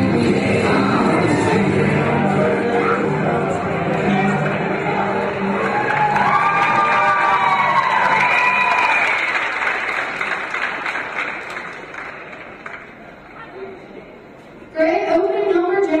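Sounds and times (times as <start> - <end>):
dance music: 0.0 - 8.8
audience applauding and cheering: 3.7 - 13.2.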